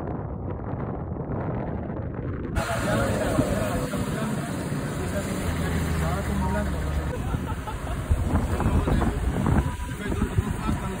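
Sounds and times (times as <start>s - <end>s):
vehicle engine low drone: 0.1s - 11.0s.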